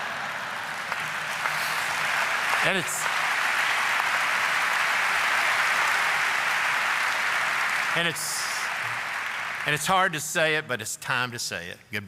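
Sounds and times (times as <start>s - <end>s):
audience applauding: 0.0s - 10.5s.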